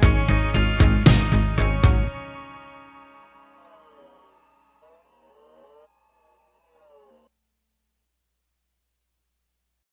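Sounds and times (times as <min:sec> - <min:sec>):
song tones gliding: 0:02.1 - 0:07.2.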